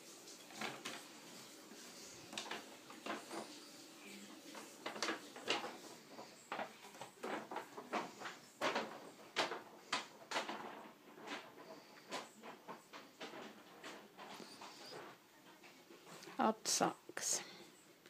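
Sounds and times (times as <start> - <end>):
soft knocks and rustles of tidying: 0.0 - 16.4.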